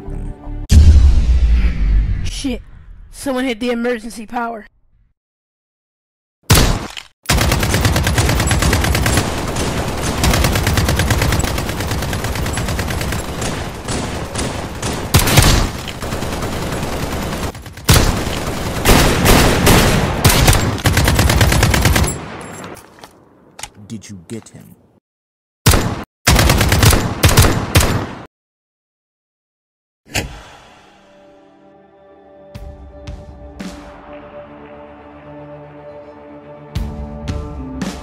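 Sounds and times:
automatic gunfire: 0:06.5 - 0:22.4, 0:25.7 - 0:28.3.

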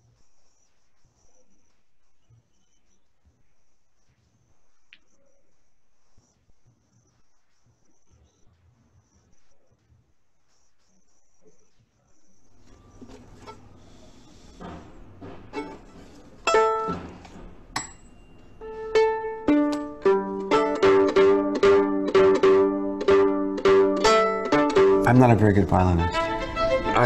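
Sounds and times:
violin strings plucked: 0:16.4 - 0:17.1, 0:18.6 - 0:27.0.

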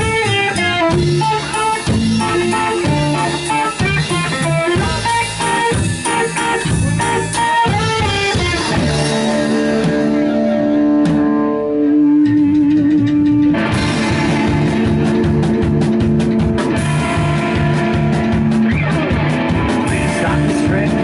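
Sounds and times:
drum kit: 0:00.0 - 0:21.0
electric guitar: 0:00.0 - 0:21.0
upright bass: 0:00.0 - 0:21.0.

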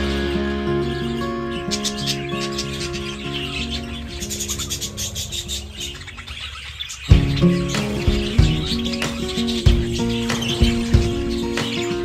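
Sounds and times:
budgerigars chirping: 0:00.8 - 0:12.0
background music with heavy beat: 0:07.1 - 0:12.0.

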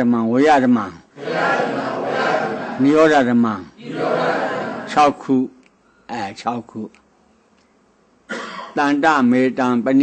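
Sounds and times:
man talking: 0:02.5 - 0:07.0
elderly man coughing: 0:08.3 - 0:08.8.

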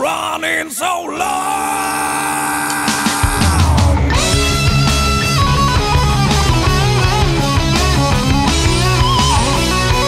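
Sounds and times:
heavy rock band playing: 0:02.6 - 0:10.0
distorted guitar chord ringing: 0:03.9 - 0:10.0.

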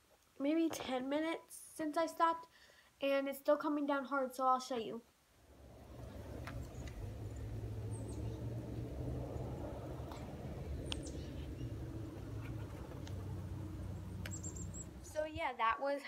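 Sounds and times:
small birds chirping: 0:05.5 - 0:15.5
wind rumble on microphone: 0:05.5 - 0:15.5.

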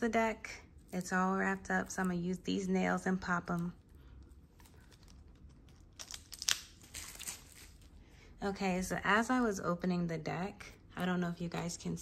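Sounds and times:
plastic wrap tearing and crinkling: 0:03.6 - 0:08.0.

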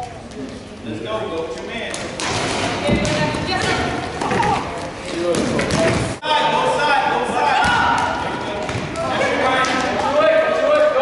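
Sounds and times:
ball kicked and bouncing: 0:02.2 - 0:04.6.

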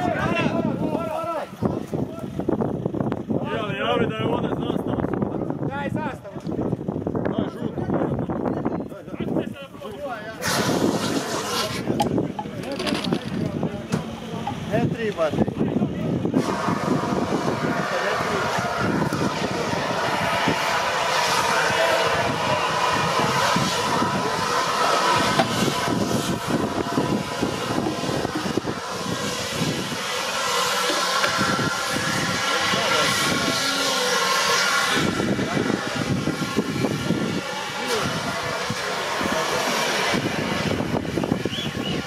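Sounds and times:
people talking: 0:00.0 - 0:02.4, 0:03.4 - 0:16.6, 0:17.5 - 0:26.0, 0:32.2 - 0:40.6
fire extinguishers hissing: 0:10.4 - 0:42.0.

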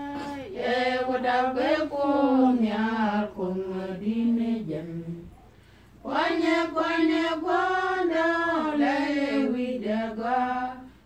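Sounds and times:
unaccompanied voices chanting: 0:00.0 - 0:11.0.

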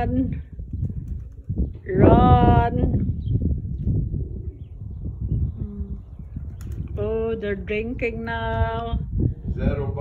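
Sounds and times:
pigeons flapping wings: 0:00.8 - 0:01.6, 0:06.5 - 0:07.0.

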